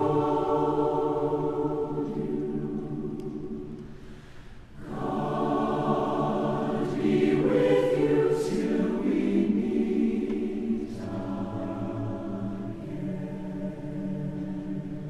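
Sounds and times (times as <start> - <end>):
choir singing held chords: 0.0 - 15.0.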